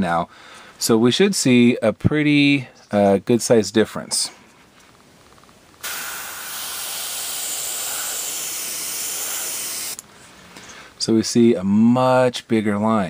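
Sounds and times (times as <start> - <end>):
airbrush spraying air hiss: 5.8 - 10.1.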